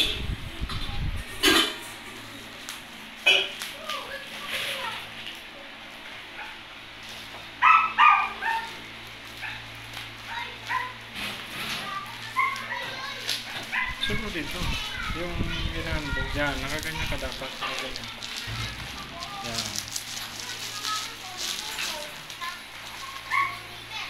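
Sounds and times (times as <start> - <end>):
dog barking: 6.4 - 6.6, 7.6 - 8.8, 9.4 - 9.7, 10.7 - 11.0, 12.3 - 14.1.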